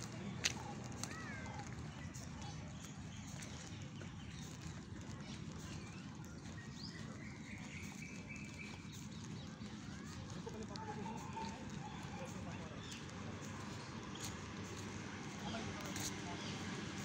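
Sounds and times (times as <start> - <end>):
footsteps on grass: 0.0 - 17.0.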